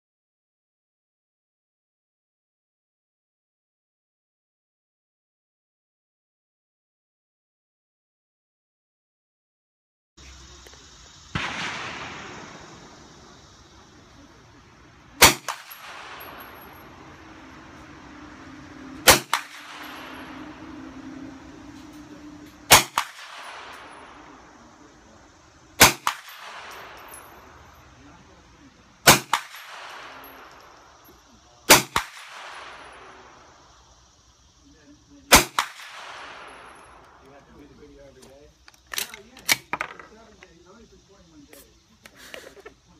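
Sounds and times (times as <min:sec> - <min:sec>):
quieter second report: 0:10.2 - 0:42.9
gunshots: 0:11.3 - 0:14.3, 0:15.1 - 0:17.2, 0:18.8 - 0:21.1, 0:22.6 - 0:24.5, 0:25.8 - 0:27.2, 0:29.0 - 0:30.6, 0:31.7 - 0:33.3, 0:35.3 - 0:37.0.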